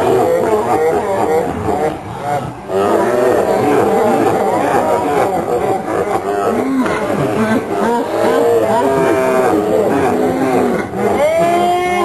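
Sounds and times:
long drawn-out vocal call: 0:00.0 - 0:12.0
people laughing and calling out: 0:03.4 - 0:12.0.

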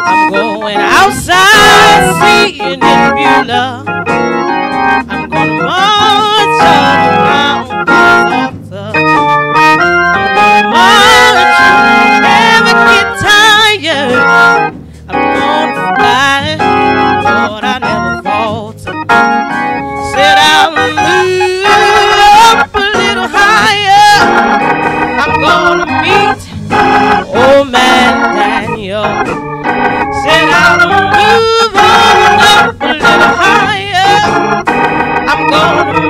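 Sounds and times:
woman singing gospel song: 0:00.0 - 0:03.9, 0:05.0 - 0:09.2, 0:10.6 - 0:19.0, 0:20.0 - 0:24.6, 0:25.2 - 0:29.4, 0:30.1 - 0:34.7, 0:35.3 - 0:36.0
organ accompaniment: 0:00.0 - 0:36.0.

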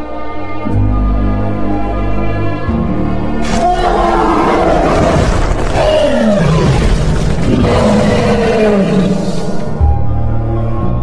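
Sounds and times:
background music: 0:00.0 - 0:11.0
dinosaur roars sliding down: 0:03.4 - 0:09.6.

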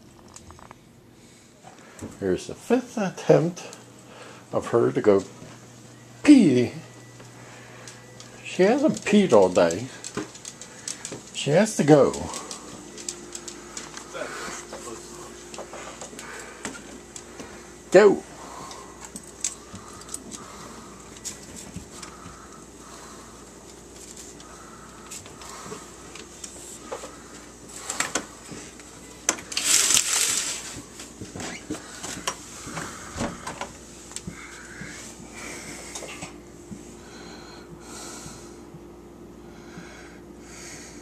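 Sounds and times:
steady low hum: 0:00.0 - 0:41.0
loud rustling noise: 0:29.4 - 0:33.1.

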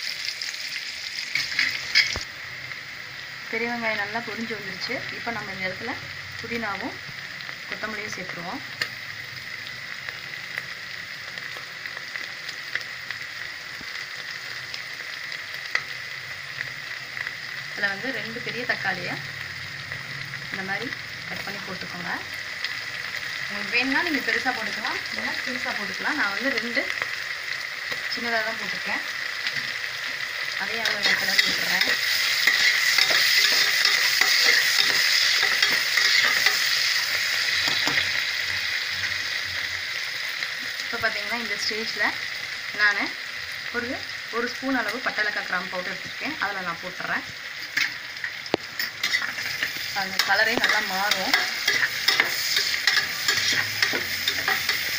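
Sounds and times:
food sizzling in hot oil: 0:00.0 - 0:54.9.

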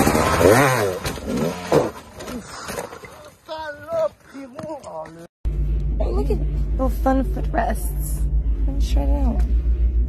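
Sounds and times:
dirt bike engine revving: 0:00.0 - 0:02.2
bike crashing on rocks: 0:00.0 - 0:03.3.

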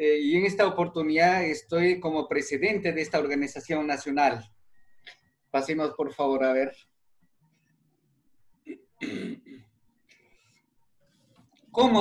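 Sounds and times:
man clearing his throat: 0:08.7 - 0:09.6
faint breath: 0:10.1 - 0:11.4.

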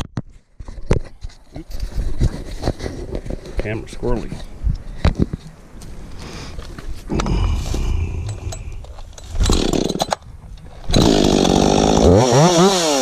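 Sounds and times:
chainsaw running: 0:09.4 - 0:10.1, 0:10.9 - 0:13.0
chainsaw engine sputtering: 0:09.4 - 0:10.2, 0:10.9 - 0:13.0.

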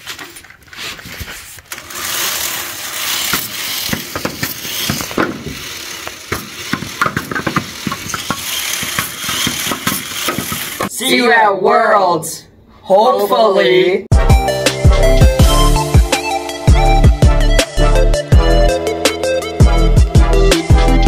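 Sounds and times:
flywheel mechanical whirr: 0:01.7 - 0:10.9
plastic balls knocking: 0:02.0 - 0:10.9.

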